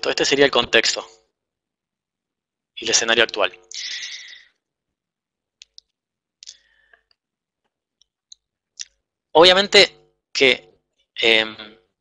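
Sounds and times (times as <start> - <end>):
computer mouse clicks: 5.6 - 9.0.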